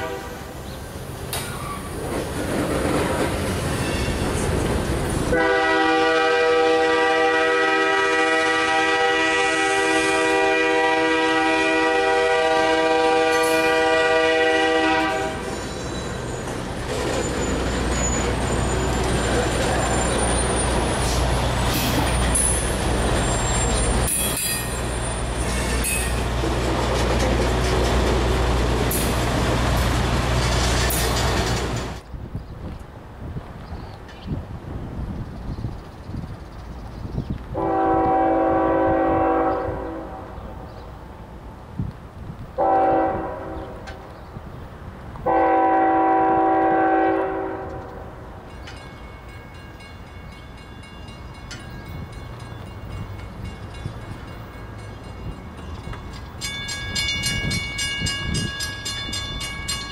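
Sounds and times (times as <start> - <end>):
train horn chord: 0.0 - 0.5, 5.3 - 15.5, 37.6 - 40.4, 42.6 - 43.9, 45.2 - 48.2
train cars clanking: 0.0 - 32.1, 46.6 - 59.9
freight train rolling past: 0.0 - 59.9
high wheel squeals: 3.6 - 4.5, 15.2 - 26.3.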